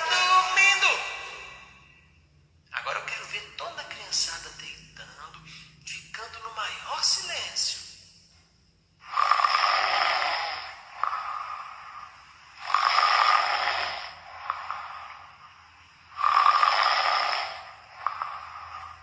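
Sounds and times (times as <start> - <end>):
person snoring: 0.0 - 2.0, 9.0 - 19.0.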